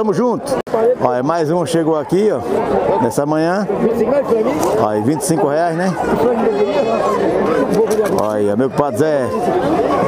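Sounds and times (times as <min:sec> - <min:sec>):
men talking over one another: 0:00.0 - 0:10.0.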